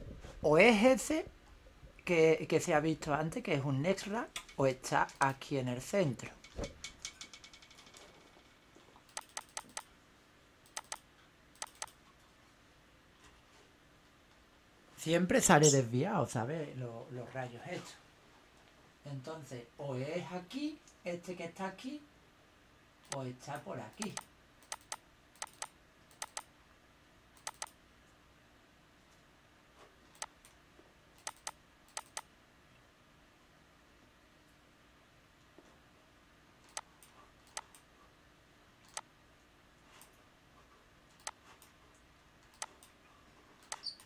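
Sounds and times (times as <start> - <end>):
faint room hiss: 0.0 - 44.0
mouse scroll-wheel ticks: 9.0 - 9.9, 10.6 - 12.0, 23.9 - 26.5, 27.4 - 27.8, 30.1 - 30.6, 31.2 - 32.3, 36.7 - 37.9, 41.2 - 43.0, 43.6 - 44.0.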